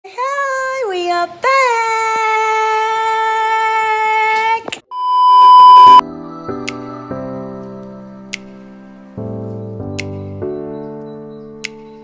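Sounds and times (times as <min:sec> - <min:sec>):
high-pitched test tone beep: 0:04.9 - 0:06.0.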